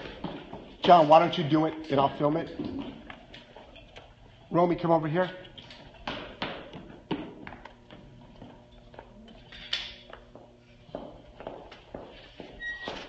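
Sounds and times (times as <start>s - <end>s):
footsteps on rubber matting: 0.0s - 3.7s, 5.6s - 9.2s, 10.0s - 13.0s.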